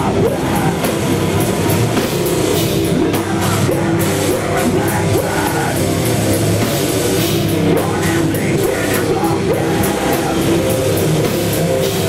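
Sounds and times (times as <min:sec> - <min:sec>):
distorted electric guitars: 0:00.0 - 0:12.0
drum kit with cymbal beat: 0:00.0 - 0:12.0.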